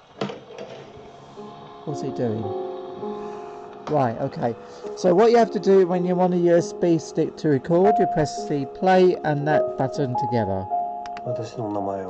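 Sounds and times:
faint music from speaker: 0.7 - 12.0.

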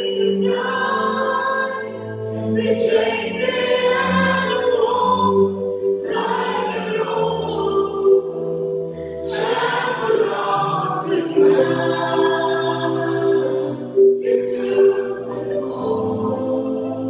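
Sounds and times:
group singing slow song: 0.0 - 17.0
keyboard: 0.0 - 17.0.

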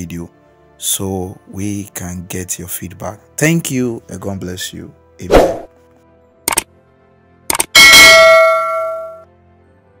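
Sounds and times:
mouse double click: 6.5 - 6.7, 7.5 - 7.7
bright bell ding: 7.8 - 9.2.

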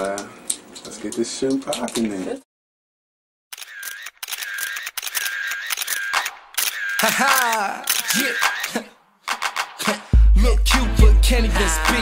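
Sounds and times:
camera shutter clicks: 3.5 - 8.8.

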